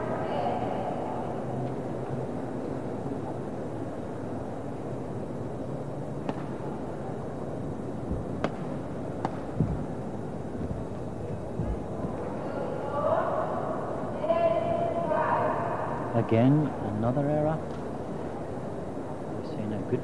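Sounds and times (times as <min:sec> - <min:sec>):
racket striking shuttlecock: 0:06.2 - 0:06.5, 0:08.4 - 0:09.5.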